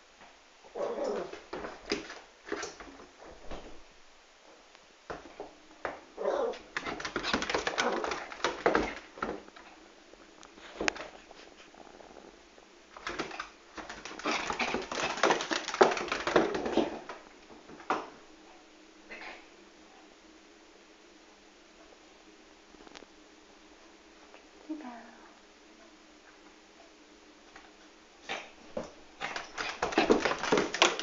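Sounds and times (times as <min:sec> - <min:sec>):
dogs scuffling: 0:05.1 - 0:11.7, 0:12.9 - 0:18.0, 0:28.7 - 0:31.0.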